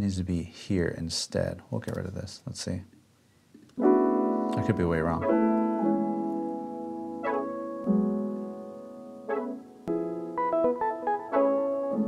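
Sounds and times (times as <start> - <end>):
chopped piano sample: 3.8 - 12.0.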